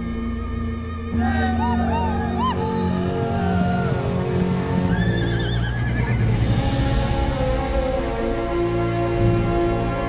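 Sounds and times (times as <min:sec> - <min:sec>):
background music: 0:00.0 - 0:10.0
horse whinnying: 0:01.5 - 0:06.6.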